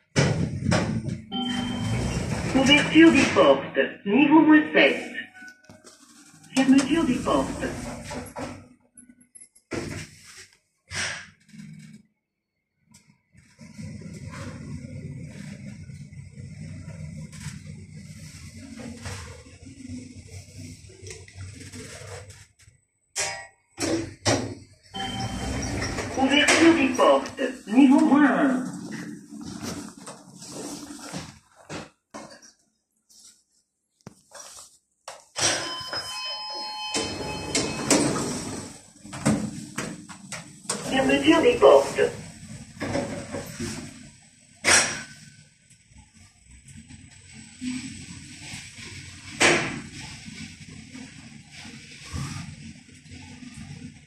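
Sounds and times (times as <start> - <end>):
sliding lift doors: 0.2 - 3.5, 6.7 - 8.7, 13.4 - 22.4, 23.8 - 27.2, 35.4 - 54.0
electronic chime: 1.3 - 2.2, 25.0 - 26.0.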